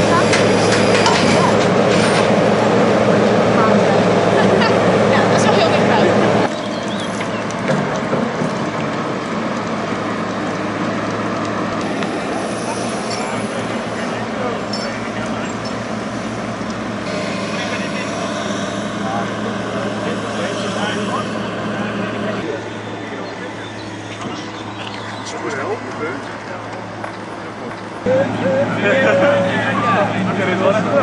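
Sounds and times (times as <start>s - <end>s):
people talking: 0.0s - 6.5s, 12.1s - 16.0s, 17.0s - 31.0s
excavator diesel engine running: 0.0s - 31.0s.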